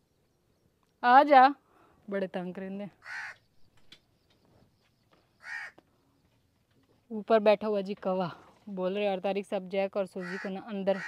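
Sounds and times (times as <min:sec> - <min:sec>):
crow cawing: 0:03.0 - 0:03.4, 0:05.4 - 0:05.8, 0:10.2 - 0:11.0.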